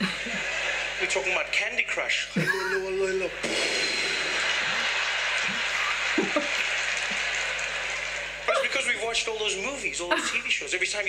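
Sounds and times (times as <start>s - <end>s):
audience chuckling: 0.0s - 1.5s, 2.4s - 9.2s
audience clapping: 0.0s - 1.6s, 3.4s - 9.8s.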